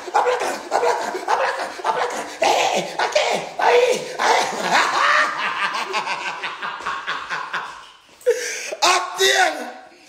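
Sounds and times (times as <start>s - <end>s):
man laughing: 0.0s - 9.0s.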